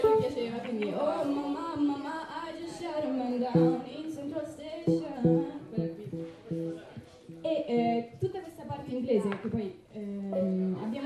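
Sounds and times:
guitar plucked notes: 0.0 - 0.2, 3.5 - 4.0, 4.9 - 7.9.

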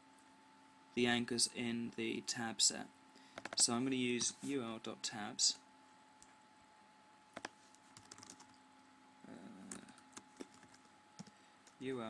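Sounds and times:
keyboard keystrokes: 3.4 - 4.3, 7.4 - 8.5.

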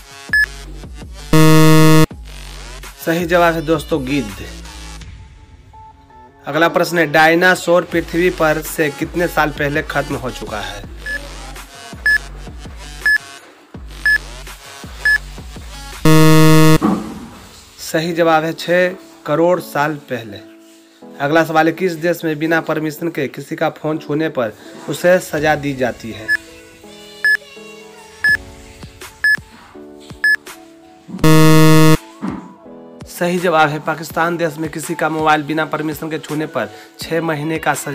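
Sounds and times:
loud buzzer: 1.4 - 2.1, 16.1 - 17.0, 31.2 - 32.0
short high timer beeps: 1.4 - 2.1, 16.1 - 16.8, 31.2 - 32.0.

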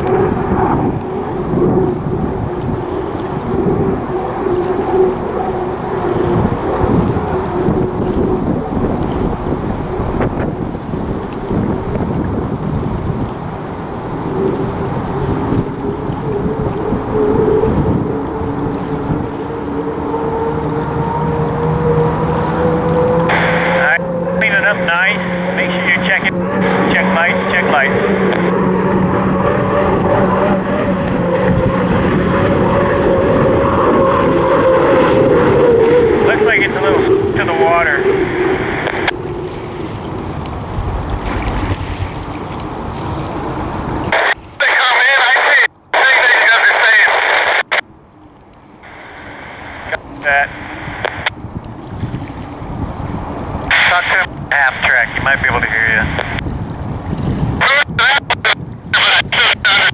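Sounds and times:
turbine engine whine: 0.0 - 56.5, 57.6 - 59.9
radio chatter voices: 23.3 - 28.6, 36.2 - 39.2, 44.1 - 47.8, 48.8 - 51.3, 53.7 - 56.4, 57.6 - 59.9.

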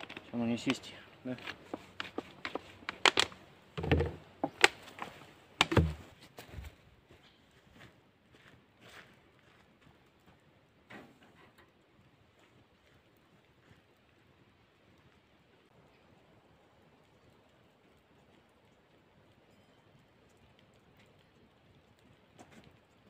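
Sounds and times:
sharp handling clicks and knocks: 0.0 - 6.2
dull thumps: 3.8 - 5.0, 5.6 - 6.2.

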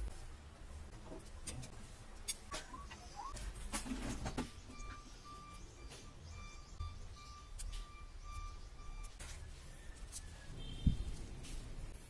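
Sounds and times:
high electronic beeping: 4.5 - 10.8.

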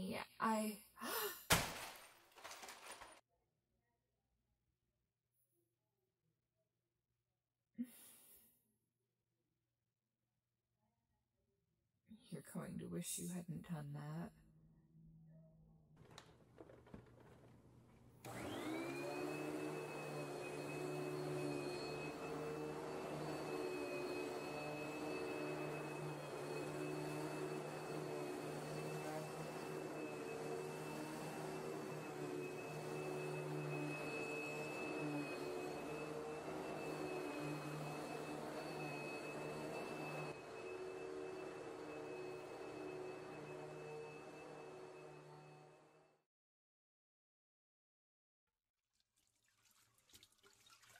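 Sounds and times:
vacuum cleaner motor running: 18.2 - 46.2.

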